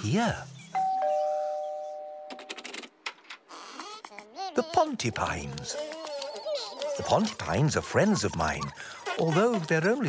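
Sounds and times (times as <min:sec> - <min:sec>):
two-note doorbell chime: 0:00.8 - 0:02.5.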